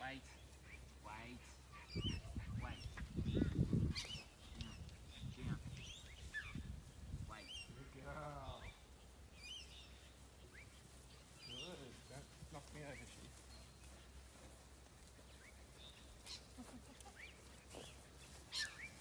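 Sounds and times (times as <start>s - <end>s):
small birds chirping: 0.0s - 19.0s.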